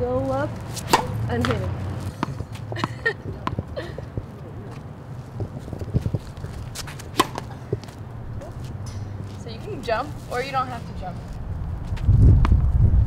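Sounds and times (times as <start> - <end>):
tennis racket striking ball: 0.6 - 3.7, 5.4 - 9.4
taps and scuffs on hard court: 0.6 - 9.4.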